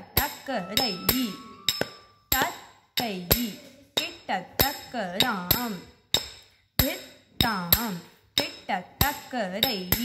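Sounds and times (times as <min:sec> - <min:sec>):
small hand cymbals clinking: 0:00.3 - 0:05.6.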